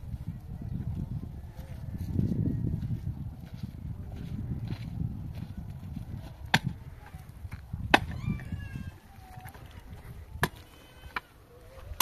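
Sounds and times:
loose earth crumbling: 3.6s - 12.0s.

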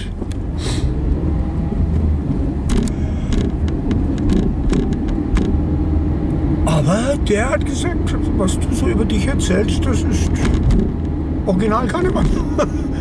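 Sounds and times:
car engine and road rumble: 0.0s - 13.0s
short knocks and clicks: 2.7s - 5.6s.

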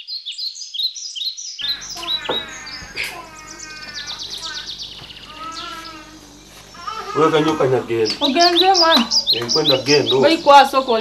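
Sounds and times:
small birds chirping: 0.0s - 11.0s
low outdoor hum: 1.6s - 11.0s.

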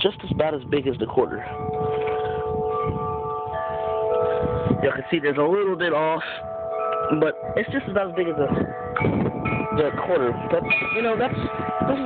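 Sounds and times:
wind chimes ringing: 0.0s - 12.0s.

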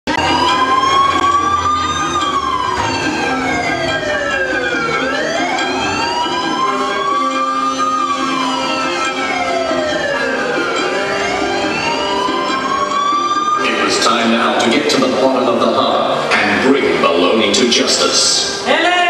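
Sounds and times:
wailing siren: 0.1s - 15.4s.

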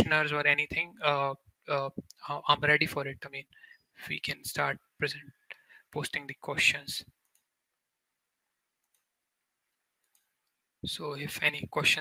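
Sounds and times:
man speaking: 0.0s - 7.1s, 10.8s - 12.0s
faint mouse clicks: 8.8s - 9.1s, 10.0s - 10.6s.

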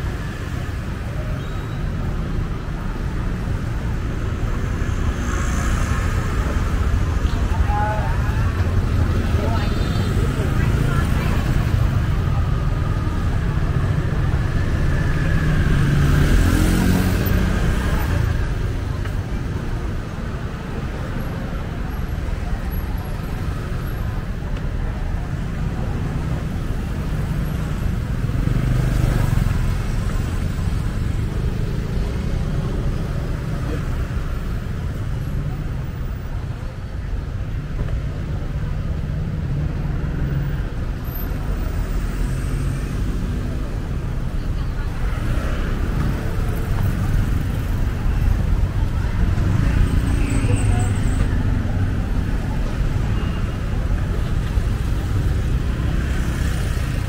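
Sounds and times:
motorbike and car engines: 0.0s - 57.0s.

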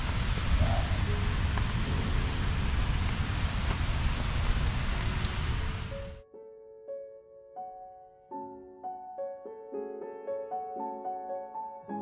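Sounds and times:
low rumble: 0.0s - 6.2s
steady rain falling: 0.0s - 6.2s.

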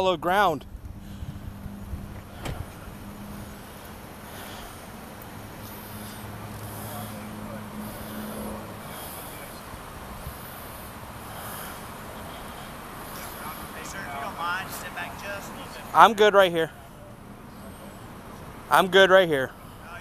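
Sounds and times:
car engine idling: 0.7s - 20.0s.

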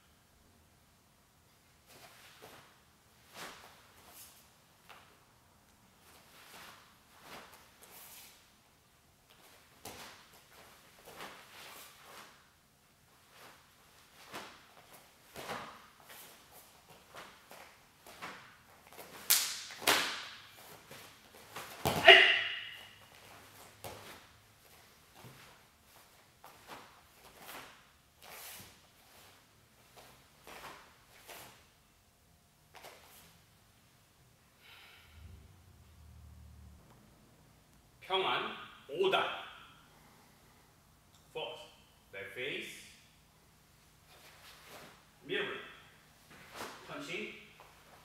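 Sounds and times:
bare feet moving on floor: 9.2s - 31.7s, 46.2s - 48.0s.

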